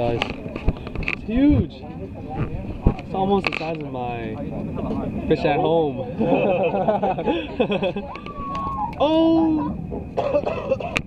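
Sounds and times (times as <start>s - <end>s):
people laughing: 6.0s - 11.0s.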